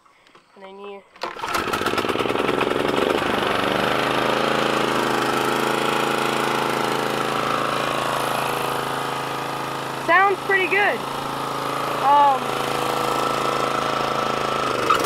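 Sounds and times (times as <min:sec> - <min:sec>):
lawn mower engine running: 0:01.2 - 0:15.0.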